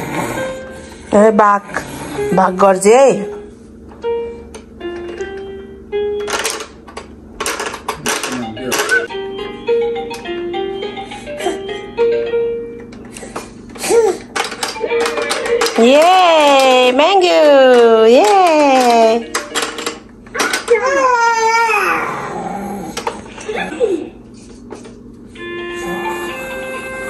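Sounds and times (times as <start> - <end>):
baby wailing: 20.4 - 23.0.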